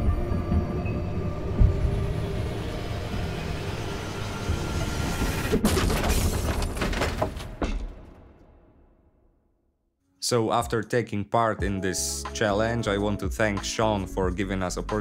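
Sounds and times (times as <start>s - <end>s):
sustained musical pad: 0.0s - 5.6s
deep rumbling ambience: 0.0s - 6.2s
sharp knocks and clatters: 4.8s - 8.5s.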